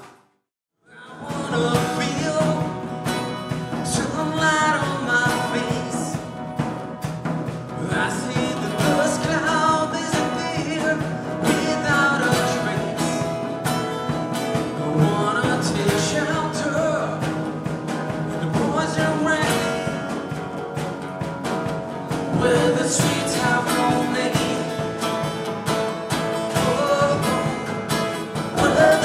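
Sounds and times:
strummed acoustic guitar: 0:00.9 - 0:29.0
drum kit: 0:01.1 - 0:29.0.

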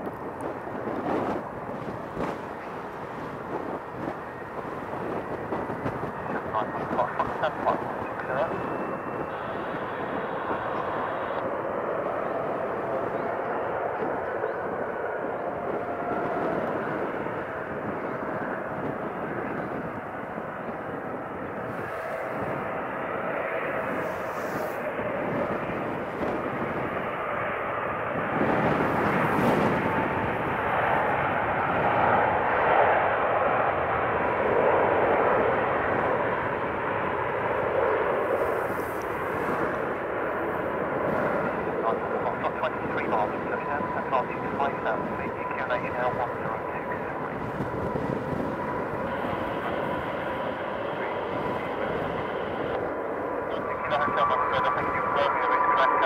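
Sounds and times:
jet engine roar with whine: 0:00.0 - 0:56.0.

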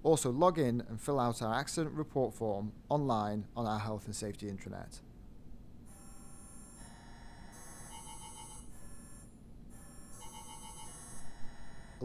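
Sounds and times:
electronic ringtone with warbling trill: 0:09.8 - 0:12.0.

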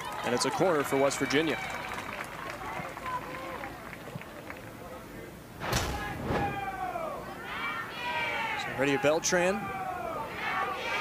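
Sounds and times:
sudden loud burst of noise: 0:05.6 - 0:06.9.

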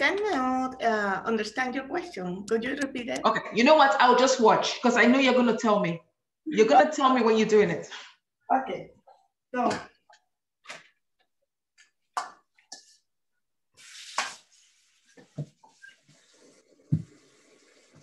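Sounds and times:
water running into sink: 0:13.8 - 0:18.0.

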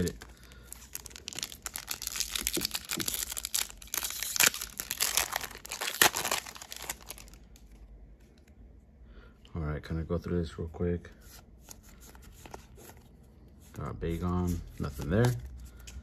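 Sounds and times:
foil wrapper crinkling: 0:00.0 - 0:07.7
foil wrapper ripping: 0:00.9 - 0:07.4.

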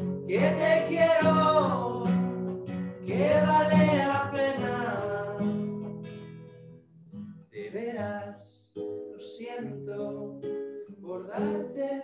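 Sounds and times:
classical guitar strummed: 0:00.0 - 0:12.0
man singing: 0:00.3 - 0:02.5, 0:03.1 - 0:05.7, 0:07.6 - 0:12.0.

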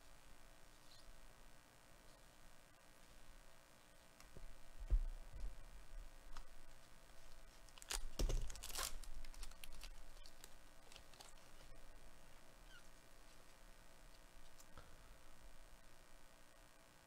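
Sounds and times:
wrapper crinkling: 0:07.2 - 0:11.8
wrapper ripping: 0:07.7 - 0:11.8.

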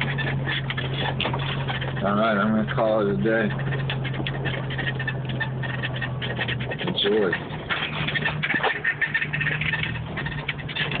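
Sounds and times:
body rattles and squeaks: 0:00.0 - 0:11.0
engine hum: 0:00.0 - 0:11.0.

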